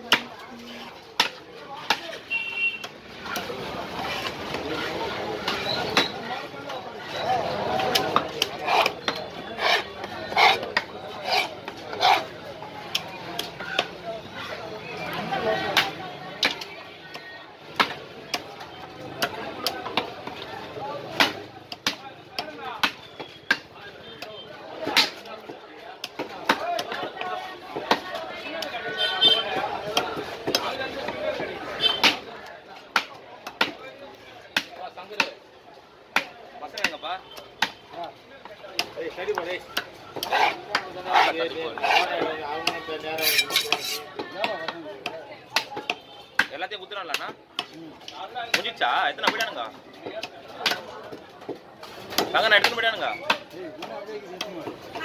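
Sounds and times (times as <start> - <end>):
rasping scraping strokes: 8.5 - 12.3, 40.2 - 42.2, 43.2 - 44.1.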